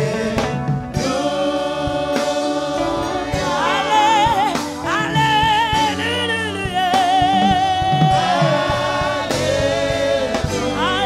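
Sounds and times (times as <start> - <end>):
band with keyboards and guitars: 0.0 - 11.0
congregation singing: 0.0 - 11.0
solo voice with vibrato: 7.2 - 8.1.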